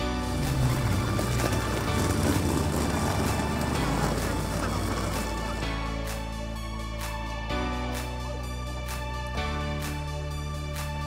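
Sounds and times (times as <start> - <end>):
background music: 0.0 - 11.0
suitcase wheels rolling on tarmac: 0.1 - 5.8.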